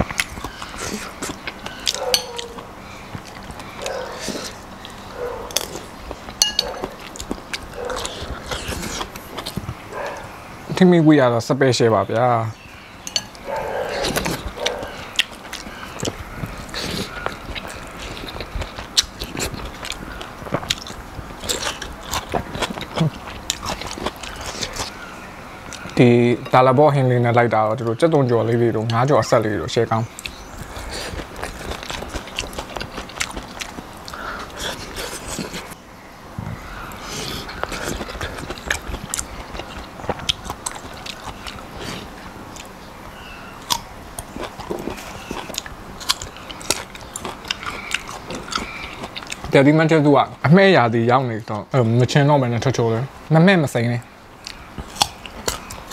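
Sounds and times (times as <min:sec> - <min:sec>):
mouth clicks and crackles: 0:00.0 - 0:10.4, 0:13.1 - 0:26.6, 0:27.7 - 0:35.8, 0:36.9 - 0:50.5, 0:54.0 - 0:55.9
person chewing food: 0:00.0 - 0:10.4, 0:12.9 - 0:25.1, 0:30.1 - 0:35.8, 0:36.7 - 0:49.6, 0:54.4 - 0:55.9.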